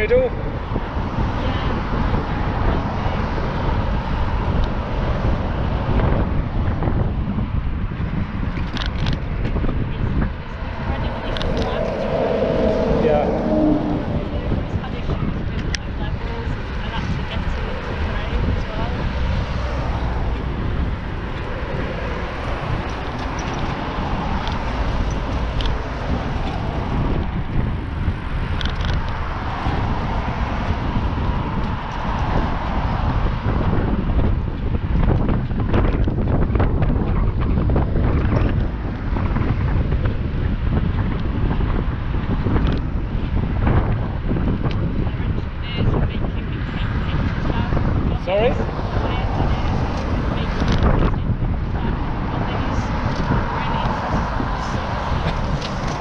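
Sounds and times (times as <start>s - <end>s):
cars passing: 0.0s - 56.0s
wind noise on microphone: 0.0s - 56.0s.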